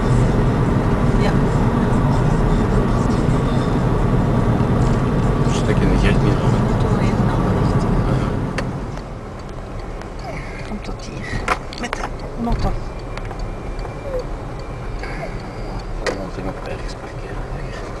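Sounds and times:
car cabin road and engine noise: 0.0 - 18.0.

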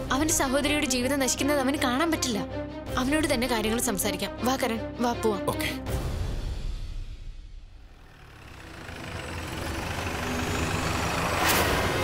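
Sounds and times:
jeep engine approaching: 7.8 - 12.0.

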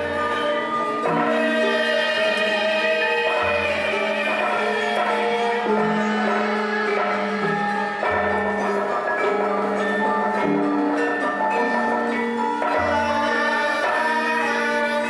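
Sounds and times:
gamelan metallophones ringing: 0.0 - 15.0.

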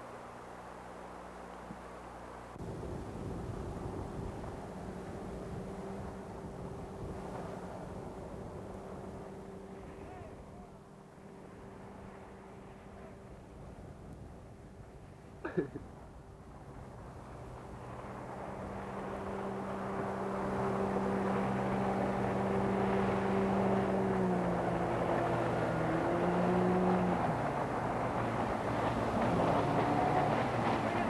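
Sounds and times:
outboard motors running: 0.0 - 31.0.

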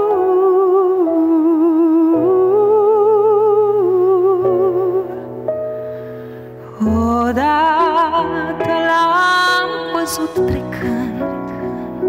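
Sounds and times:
woman singing with vibrato: 6.7 - 12.0.

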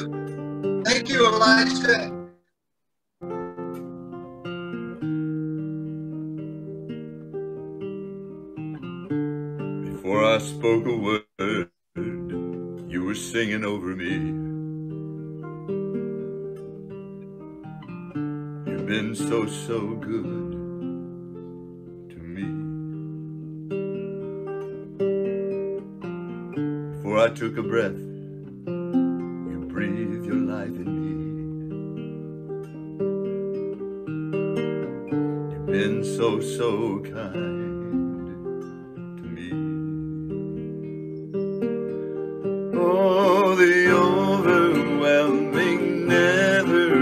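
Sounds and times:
classical guitar chords: 0.0 - 2.5, 3.2 - 47.0
person singing: 0.8 - 2.2, 10.0 - 13.1, 35.6 - 38.4, 42.7 - 47.0.

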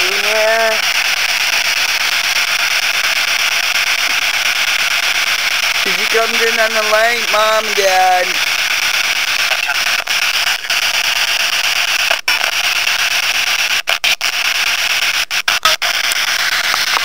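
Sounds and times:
faint voice in static: 0.0 - 0.8, 5.8 - 8.4, 9.4 - 11.0
radio static hiss: 0.0 - 17.0.

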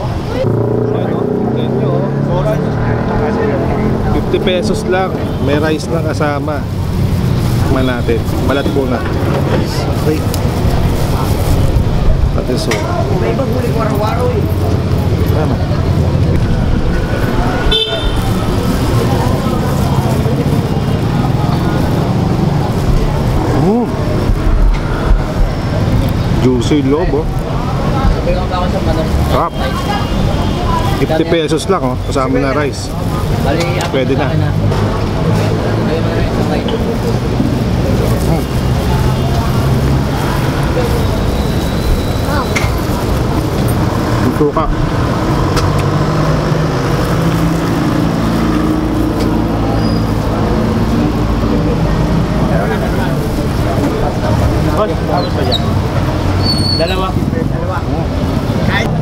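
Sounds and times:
crowd chatter: 0.0 - 59.0
traffic rumble: 0.0 - 59.0.

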